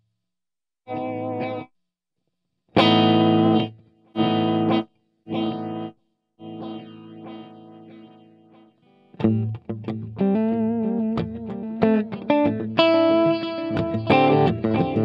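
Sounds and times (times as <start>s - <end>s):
electric guitar chords with delay: 2.8s - 8.6s, 9.2s - 15.0s.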